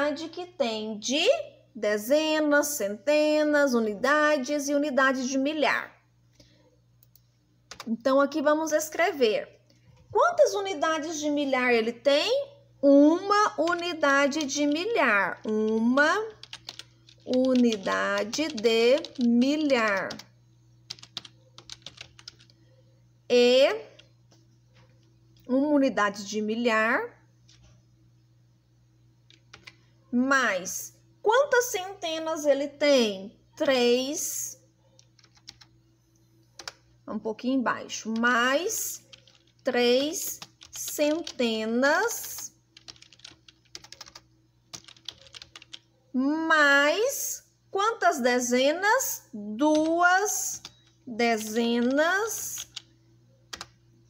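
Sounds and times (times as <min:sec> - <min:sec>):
keyboard typing: 0:07.0 - 0:07.9, 0:13.6 - 0:22.7, 0:23.9 - 0:25.5, 0:29.2 - 0:29.8, 0:34.9 - 0:35.7, 0:36.6 - 0:36.9, 0:38.0 - 0:41.4, 0:42.2 - 0:45.9, 0:49.7 - 0:52.9, 0:53.5 - 0:53.8
keyboard keystrokes: 0:16.4 - 0:20.3, 0:20.9 - 0:22.5, 0:39.1 - 0:39.5, 0:42.8 - 0:45.8.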